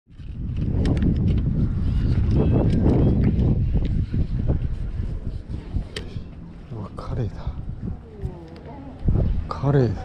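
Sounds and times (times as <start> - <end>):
wind rumble on microphone: 0.1 - 10.0.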